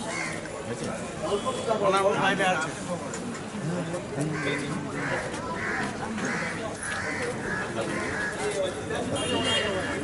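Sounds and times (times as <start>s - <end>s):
low background voices: 0.0s - 10.0s
crow cawing: 0.1s - 0.4s, 4.3s - 8.6s.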